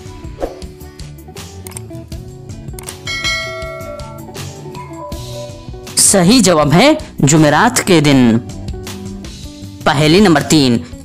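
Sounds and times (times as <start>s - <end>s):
background music: 0.0s - 11.0s
bell-like timer chime: 3.1s - 5.6s.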